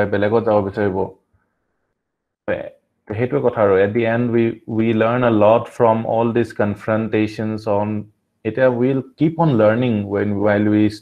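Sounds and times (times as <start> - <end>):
man speaking: 0.0 - 1.1, 2.5 - 11.0.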